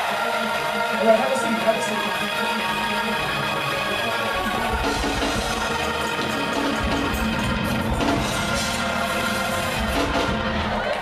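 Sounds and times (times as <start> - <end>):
gospel band music: 0.0 - 11.0
held chords: 0.0 - 11.0
drum beat: 4.4 - 11.0.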